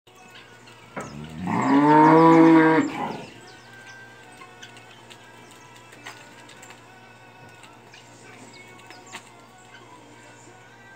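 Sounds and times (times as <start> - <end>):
cow mooing: 1.1 - 3.4.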